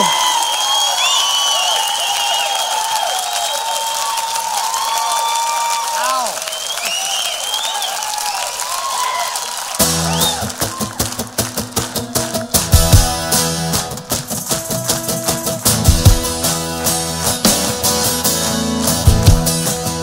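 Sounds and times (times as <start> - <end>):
whistles from audience: 0.0 - 11.1
audience applauding and cheering: 0.0 - 20.0
rock band playing: 9.8 - 20.0.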